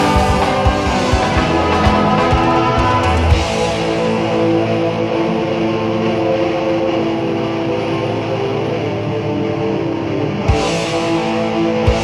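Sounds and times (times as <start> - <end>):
drums: 0.0 - 9.0, 10.3 - 12.0
distorted electric guitars: 0.0 - 12.0.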